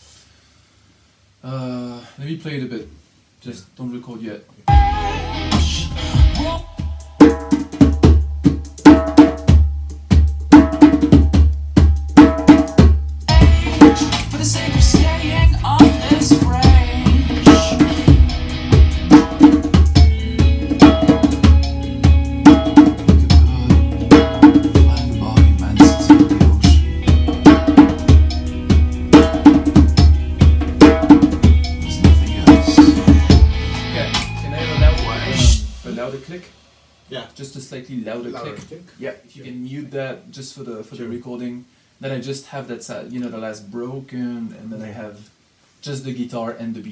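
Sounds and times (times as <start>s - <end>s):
djembe drumming: 4.7s - 36.3s.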